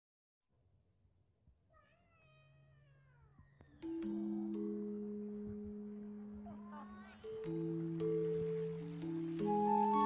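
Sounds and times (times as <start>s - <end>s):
intro music with mallet notes: 3.8s - 10.0s.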